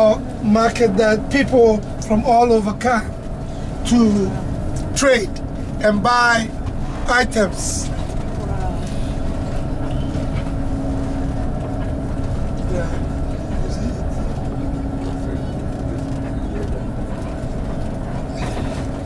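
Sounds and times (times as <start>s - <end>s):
coach engine rumble and road noise: 0.0s - 19.0s
faint voices: 12.5s - 19.0s.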